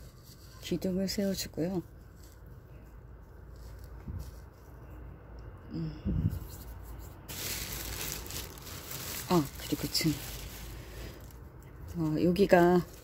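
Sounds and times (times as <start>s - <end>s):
low background rumble: 0.0s - 13.0s.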